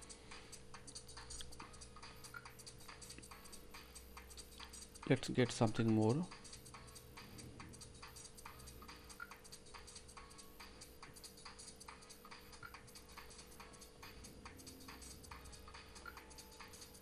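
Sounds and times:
faint irregular ticks: 0:00.0 - 0:17.0
faint steady hum: 0:00.0 - 0:17.0.

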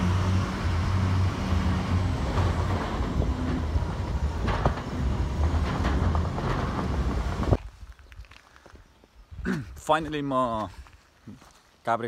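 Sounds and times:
vehicle engine low rumble: 0:00.0 - 0:08.1
vehicle body knocks and rattles: 0:01.8 - 0:07.6.

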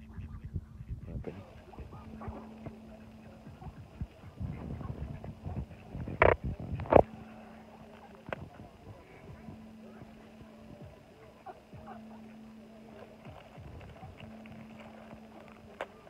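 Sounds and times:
ducks quacking: 0:00.0 - 0:06.4
low uneven rumble: 0:00.0 - 0:16.0.

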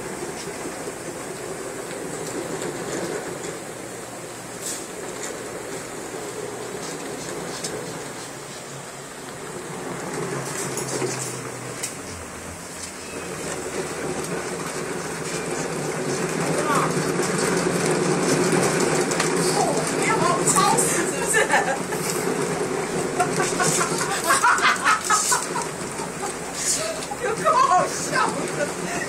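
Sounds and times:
exercise wheel rolling rumble: 0:00.0 - 0:29.0
faint voices: 0:15.2 - 0:17.4, 0:19.2 - 0:24.4, 0:25.1 - 0:29.0.

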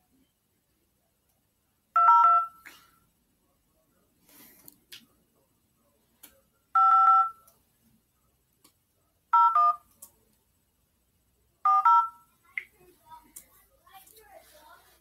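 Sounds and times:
phone keypad tones: 0:02.0 - 0:02.6, 0:06.8 - 0:07.5, 0:09.4 - 0:09.9, 0:11.7 - 0:12.2.

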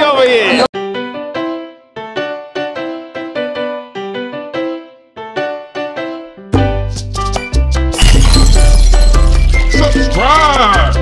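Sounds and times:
glass shattering effect: 0:07.9 - 0:10.4.

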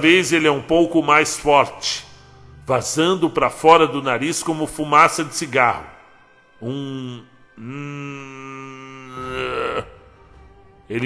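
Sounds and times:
man humming through closed lips: 0:06.7 - 0:10.0.

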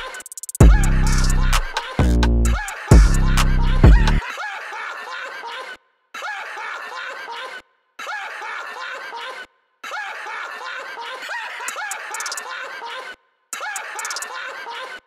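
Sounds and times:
chopped laughing vocal sample: 0:00.0 - 0:15.0.

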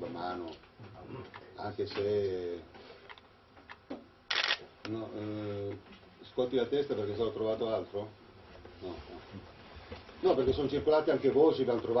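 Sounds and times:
camera shutter firing: 0:04.3 - 0:04.7.

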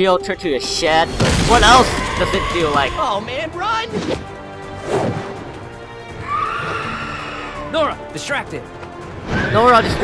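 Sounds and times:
orchestral action music: 0:00.0 - 0:10.0.

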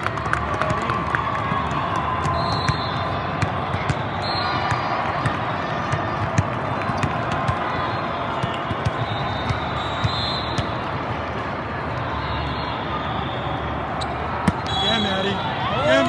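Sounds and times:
crowd hubbub: 0:00.0 - 0:16.0
volleyballs being hit and bouncing: 0:00.1 - 0:11.2, 0:14.1 - 0:14.8
players shouting: 0:13.7 - 0:16.0.

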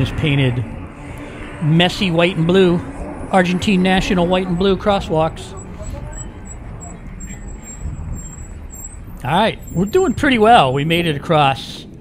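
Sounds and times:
rumble of vehicle engines: 0:00.0 - 0:12.0.

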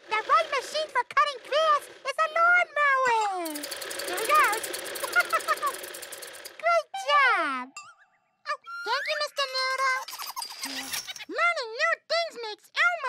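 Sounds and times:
reel lawnmower blades cutting grass: 0:00.0 - 0:02.1, 0:03.4 - 0:06.6.

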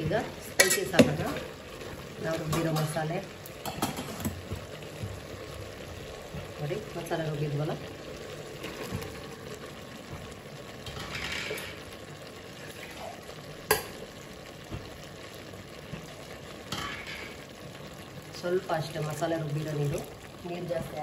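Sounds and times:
vegetables sizzling: 0:00.0 - 0:21.0.

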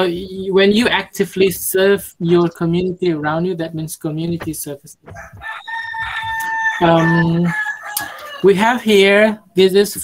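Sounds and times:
rooster crowing: 0:05.1 - 0:08.5.

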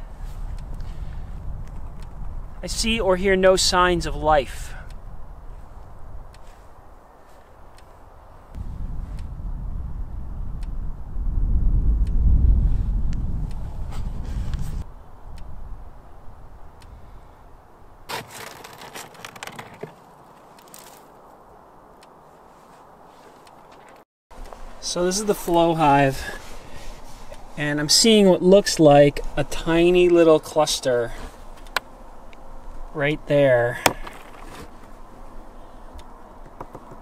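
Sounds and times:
wind rumble on microphone: 0:00.0 - 0:18.1
wooden beehive boxes knocking: 0:36.5 - 0:37.0.

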